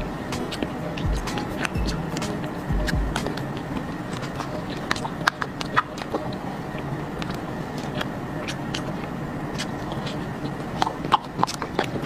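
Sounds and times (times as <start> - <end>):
steady low background noise: 0.0 - 12.0.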